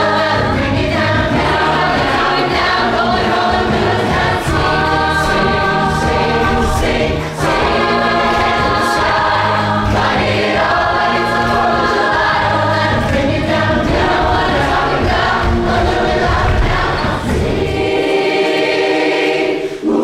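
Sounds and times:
choir singing in harmony: 0.0 - 20.0.

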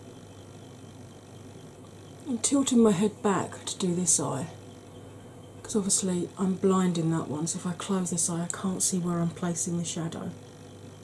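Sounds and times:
faint hum: 0.0 - 11.0.

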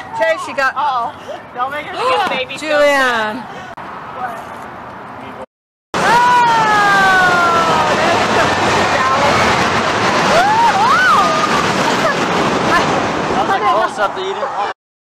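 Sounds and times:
person crying out whoa: 6.0 - 7.9
long falling scream: 6.0 - 12.2
roller coaster rushing: 6.0 - 14.8.

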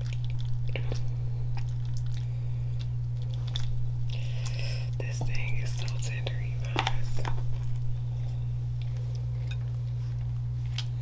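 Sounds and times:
chewing: 0.0 - 11.0
steady low hum: 0.0 - 11.0.

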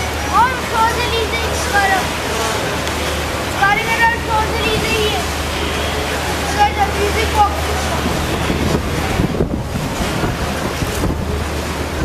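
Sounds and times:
boat engine hum: 0.0 - 12.0
rushing water: 0.0 - 12.0
wind buffeting microphone: 6.6 - 12.0.

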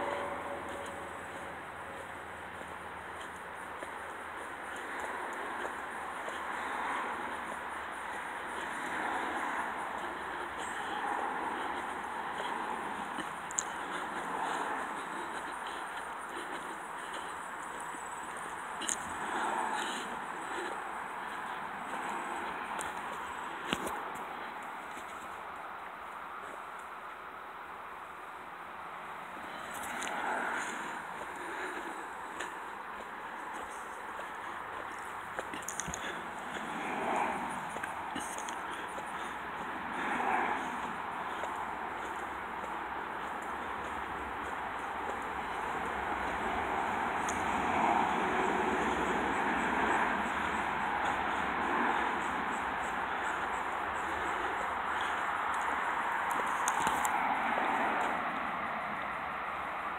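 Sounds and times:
wind rustle: 0.0 - 59.9.

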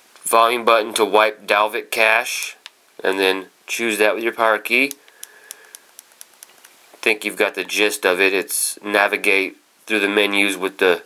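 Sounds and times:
faint clicks: 4.9 - 7.1.

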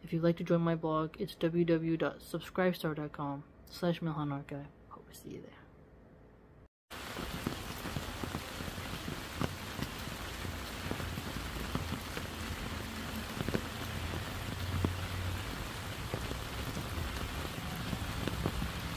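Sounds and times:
rain on leaves: 6.9 - 18.9.

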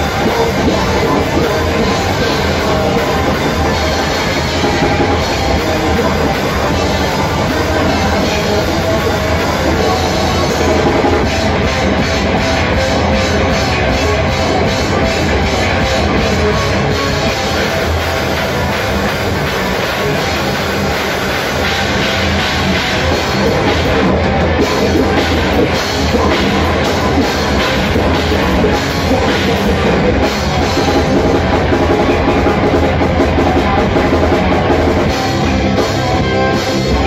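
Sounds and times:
heavy metal band playing: 0.0 - 37.0.

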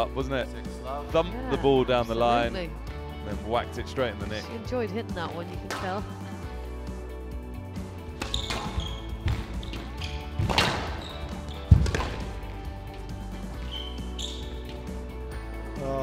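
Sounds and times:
background music: 0.0 - 16.0
squash ball hitting walls: 8.2 - 13.6.

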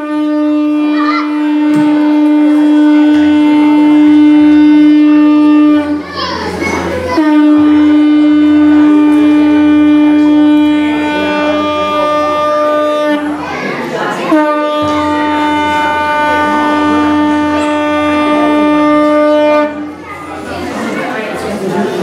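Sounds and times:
conch shell blasts: 0.0 - 6.0, 7.0 - 13.4, 14.3 - 20.0.

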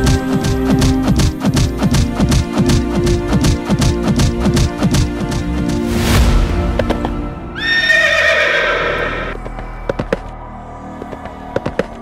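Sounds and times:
background music: 0.0 - 12.0
horse whinnying: 7.6 - 9.4.

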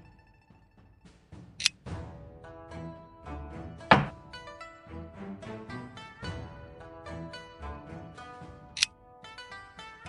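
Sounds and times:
background music: 0.0 - 10.0
game piece clacks: 3.9 - 4.1.

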